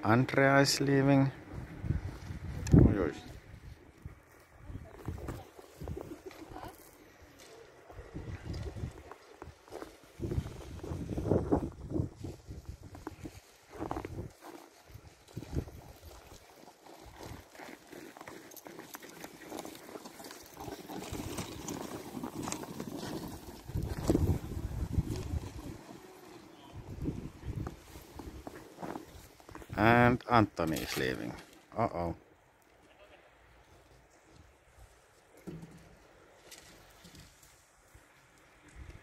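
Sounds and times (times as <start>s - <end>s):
sled dogs: 13.0s - 29.7s.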